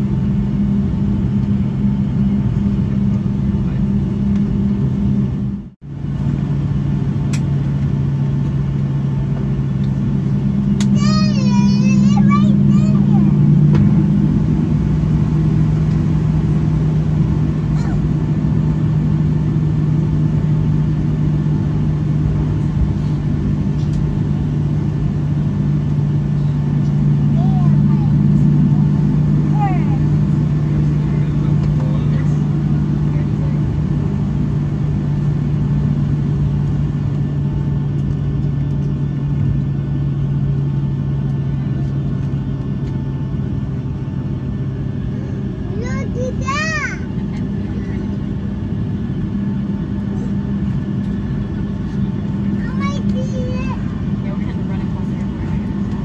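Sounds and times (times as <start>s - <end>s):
jet engines idling low drone: 0.0s - 56.0s
passengers murmuring: 10.8s - 16.8s, 26.1s - 35.5s, 41.4s - 56.0s.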